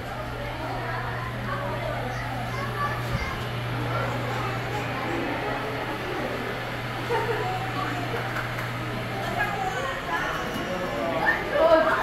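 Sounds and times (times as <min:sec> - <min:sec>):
indistinct chatter of visitors: 0:00.0 - 0:12.0
steady low hum: 0:00.0 - 0:12.0.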